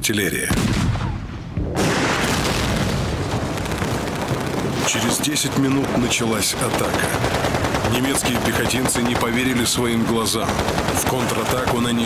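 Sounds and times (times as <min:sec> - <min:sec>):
artillery shell blast: 0:00.5 - 0:05.2.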